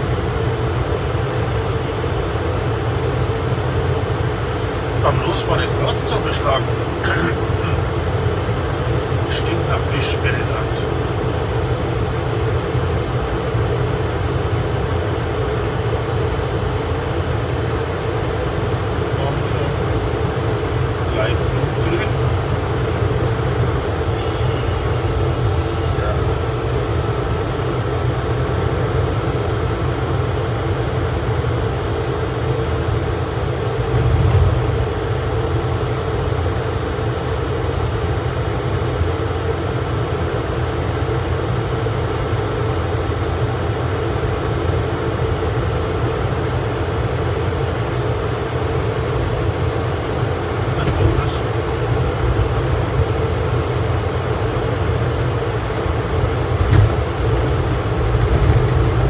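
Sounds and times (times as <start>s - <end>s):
steady electric hum: 0.0s - 59.0s.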